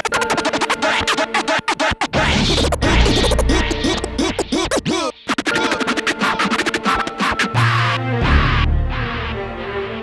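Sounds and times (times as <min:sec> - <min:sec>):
turntable scratching: 0:00.0 - 0:08.0
hip-hop beat: 0:00.0 - 0:09.5.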